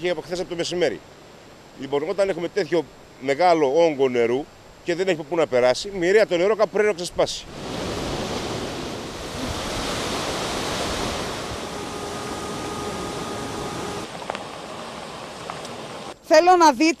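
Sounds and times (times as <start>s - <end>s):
wind: 0.0s - 17.0s
sea surf rushing: 6.8s - 16.2s
faint steady tone: 9.0s - 16.2s.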